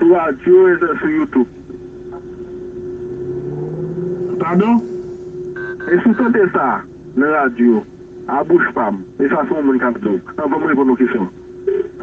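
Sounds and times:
steady low hum: 0.0 - 12.0
deep drone rising in pitch: 1.6 - 9.3.

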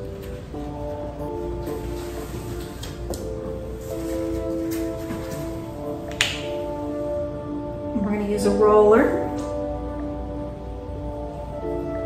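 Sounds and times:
soft background music: 0.0 - 12.0
plastic bottle cap snapping open: 6.1 - 6.5.

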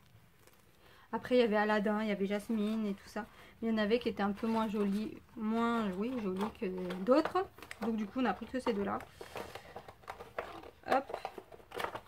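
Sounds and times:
small objects knocking and rustling: 4.0 - 12.0.

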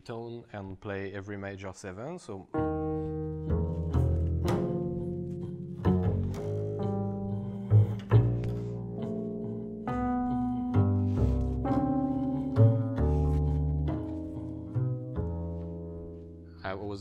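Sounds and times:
double bass plucked pizzicato: 2.5 - 16.6.

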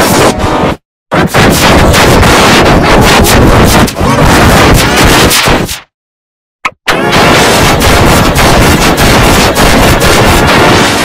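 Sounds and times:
harsh distorted crackling: 1.2 - 5.8, 6.9 - 11.0.

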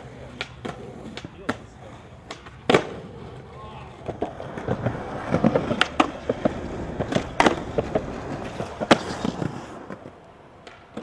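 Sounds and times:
skateboard clacking on ground: 0.0 - 11.0
skateboard rolling on pavement: 0.0 - 11.0.

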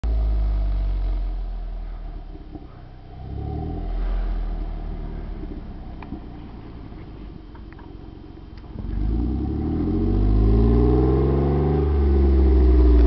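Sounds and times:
off-road vehicle engine revving: 2.5 - 6.1, 8.6 - 13.0.

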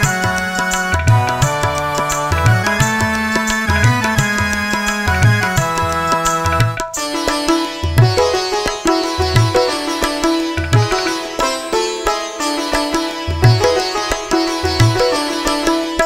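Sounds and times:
plucked-string melody: 0.0 - 16.0.

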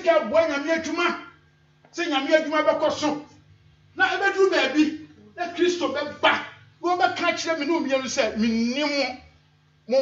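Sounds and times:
man preaching into microphone: 0.0 - 10.0.

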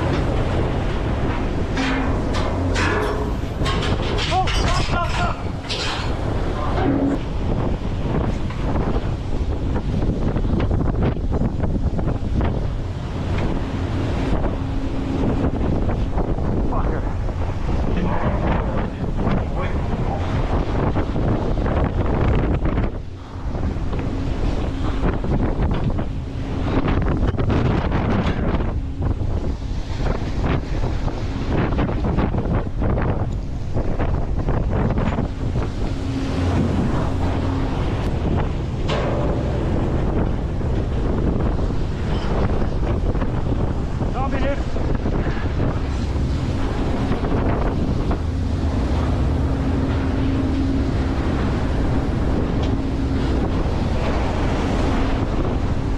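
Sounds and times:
boat engine rumble: 0.0 - 55.9
low steady hum: 0.0 - 55.9
sea water rushing and breaking: 0.0 - 55.9
wind buffeting microphone: 0.0 - 55.9.

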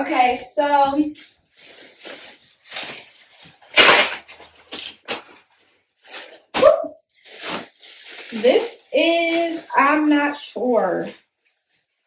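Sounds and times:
plastic packaging rustling: 1.0 - 12.0.

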